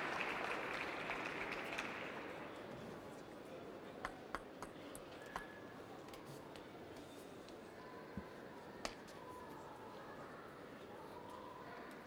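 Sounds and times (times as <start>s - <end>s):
crowd applause: 0.0s - 2.5s.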